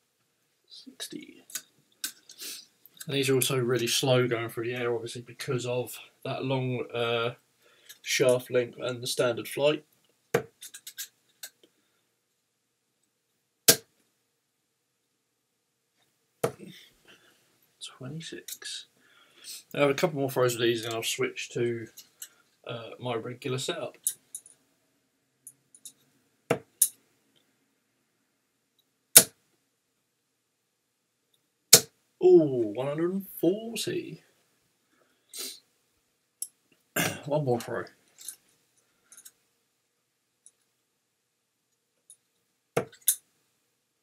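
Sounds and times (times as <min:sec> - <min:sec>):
darts thudding into dartboard: 0:29.2 - 0:29.4.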